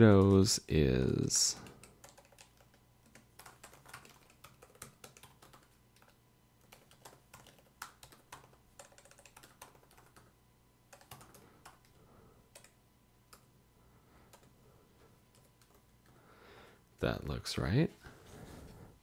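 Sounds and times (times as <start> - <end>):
faint keyboard typing: 0.0 - 0.6, 1.4 - 13.5, 14.2 - 16.2.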